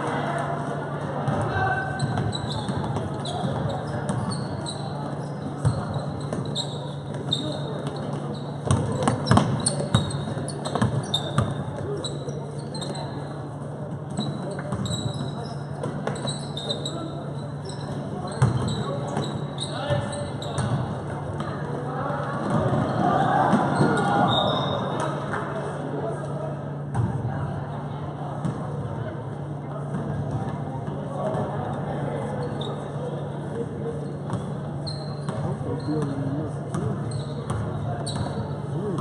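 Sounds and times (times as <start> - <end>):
spectators chatting: 0.0 - 39.0
sneaker squeaks: 1.2 - 25.4, 29.7 - 39.0
basketball bouncing on hardwood floor: 8.6 - 10.1.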